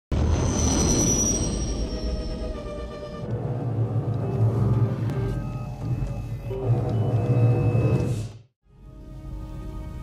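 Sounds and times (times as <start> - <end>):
dramatic orchestral film music: 0.2 - 10.0.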